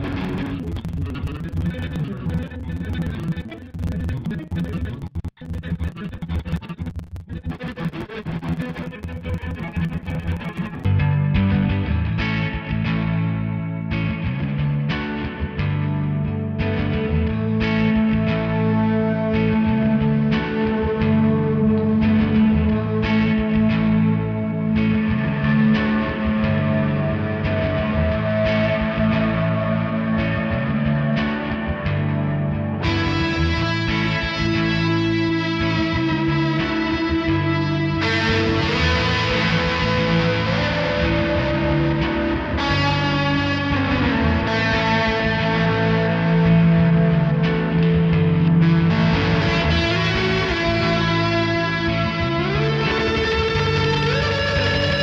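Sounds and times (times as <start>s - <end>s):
distorted electric guitar chords: 0.0s - 55.0s.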